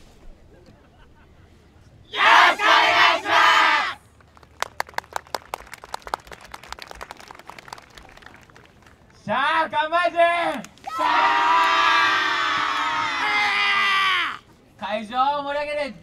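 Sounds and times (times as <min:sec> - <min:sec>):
group shouting in unison: 0:02.1 - 0:04.0, 0:10.8 - 0:14.4
scattered handclaps: 0:04.2 - 0:09.2.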